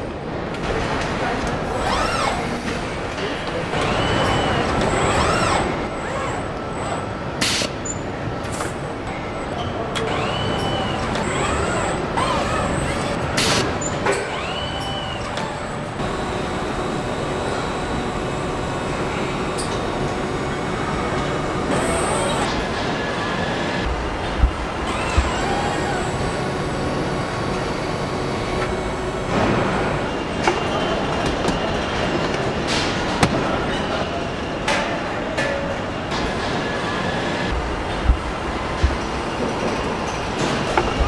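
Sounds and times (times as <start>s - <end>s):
factory noise: 0.0s - 41.0s
robot arm motors whining: 1.7s - 2.6s, 3.8s - 7.0s, 9.9s - 22.5s, 23.1s - 29.5s.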